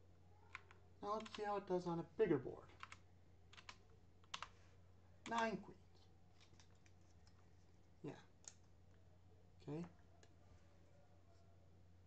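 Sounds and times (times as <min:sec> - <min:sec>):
low steady hum: 0:00.0 - 0:12.0
computer clicks: 0:03.6 - 0:04.5.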